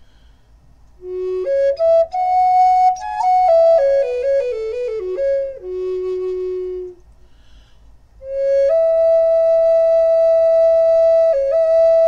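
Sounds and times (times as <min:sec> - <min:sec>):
wooden flute holding long note: 0:01.0 - 0:07.0, 0:08.2 - 0:12.0.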